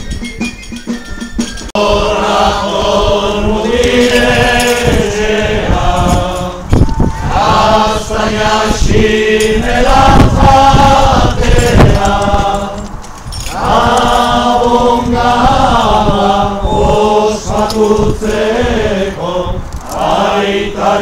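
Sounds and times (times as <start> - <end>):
group singing chant-like song: 1.8 - 21.0.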